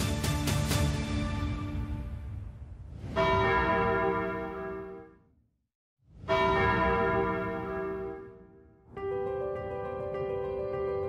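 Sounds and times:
soundtrack music: 0:00.0 - 0:04.9, 0:09.0 - 0:11.0
bell chime: 0:06.3 - 0:08.5.

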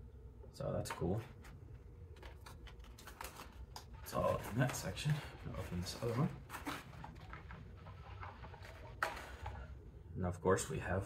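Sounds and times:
low steady hum: 0:00.0 - 0:11.0
cardboard box rustling: 0:02.2 - 0:09.7.

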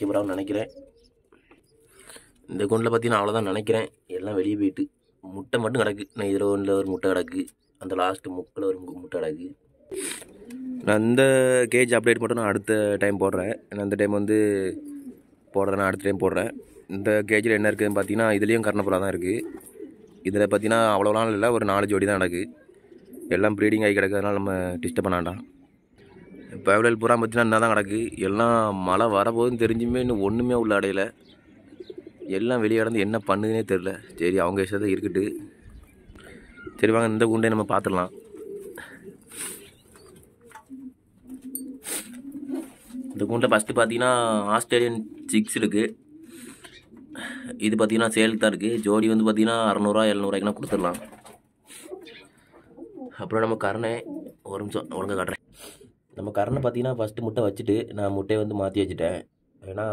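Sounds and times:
man talking: 0:00.0 - 0:00.8, 0:02.4 - 0:09.6, 0:10.8 - 0:14.9, 0:15.5 - 0:19.6, 0:20.2 - 0:22.6, 0:23.3 - 0:25.5, 0:26.4 - 0:31.2, 0:32.2 - 0:35.6, 0:36.2 - 0:39.0, 0:43.1 - 0:46.0, 0:47.2 - 0:51.2, 0:53.1 - 0:55.5, 0:56.1 - 0:59.9
pigeons cooing: 0:00.0 - 0:56.1.

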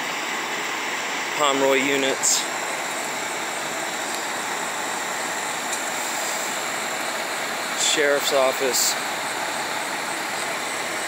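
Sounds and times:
fire truck engines running: 0:00.0 - 0:11.0.

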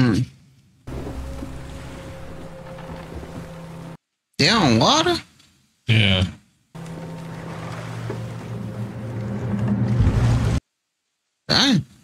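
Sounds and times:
wind and sea rushing: 0:00.9 - 0:04.0, 0:06.8 - 0:10.6.

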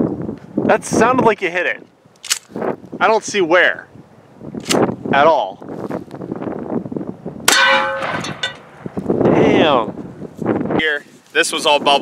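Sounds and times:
wind buffeting microphone: 0:00.0 - 0:12.0
shotgun blast hitting armor plate: 0:07.5 - 0:08.6
metallic ring: 0:07.5 - 0:08.7.

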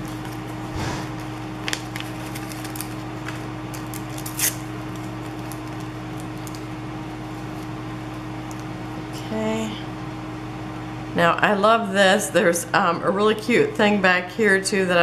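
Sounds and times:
wax paper rustling: 0:00.0 - 0:08.3
low electrical hum: 0:00.0 - 0:15.0.

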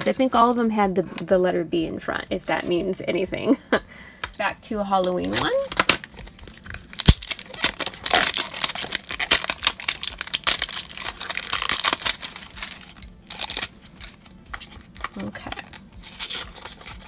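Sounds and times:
cardboard tearing and crinkling: 0:05.2 - 0:17.0.

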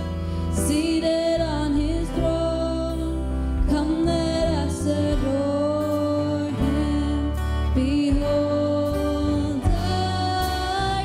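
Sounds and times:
bass guitar: 0:00.0 - 0:11.0
guitar: 0:00.0 - 0:11.0.

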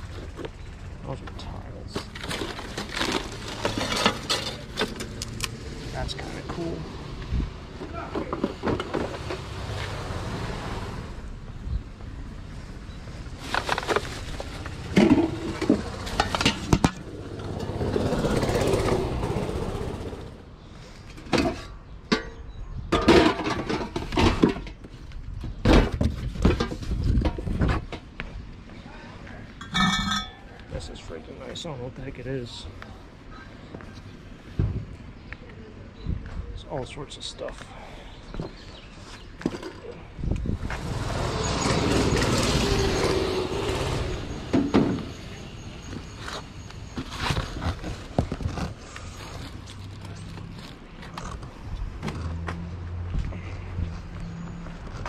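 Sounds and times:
vehicle passing on street: 0:03.2 - 0:07.8, 0:08.5 - 0:20.8, 0:40.2 - 0:55.0
metal tins clinking: 0:29.6 - 0:30.5.

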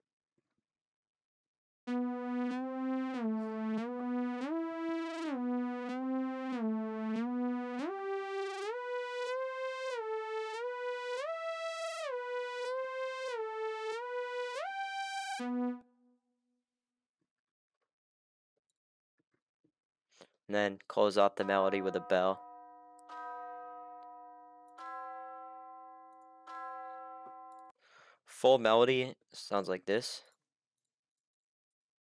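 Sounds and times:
synthesizer lead melody: 0:01.9 - 0:15.9, 0:21.4 - 0:27.7.

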